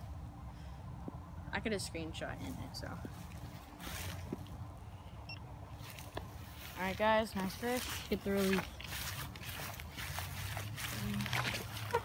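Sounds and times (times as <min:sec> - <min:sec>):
faint constant hum: 0:00.0 - 0:12.0
low outdoor rumble: 0:00.0 - 0:12.0.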